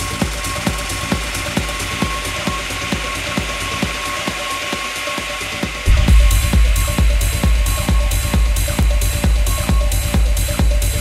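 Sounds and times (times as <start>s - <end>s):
kick drum and bass: 0.0s - 11.0s
techno percussive ticks: 0.0s - 11.0s.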